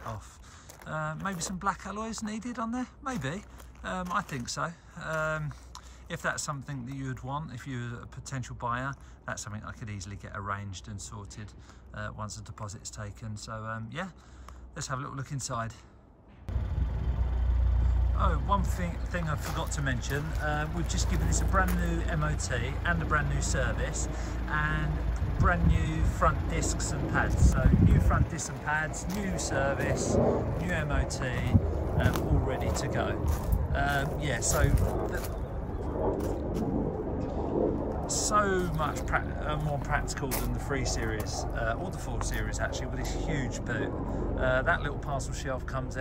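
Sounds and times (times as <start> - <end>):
low steady outdoor rumble: 0.0 - 46.0
car engine idling: 16.5 - 29.8.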